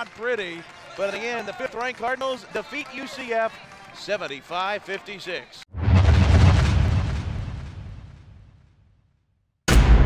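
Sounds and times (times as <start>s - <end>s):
deep cinematic boom: 5.7s - 8.9s, 9.7s - 10.0s.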